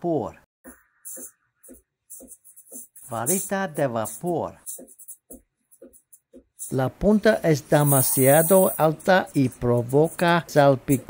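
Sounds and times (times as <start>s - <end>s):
steam wand steaming milk: 7.7s - 9.4s.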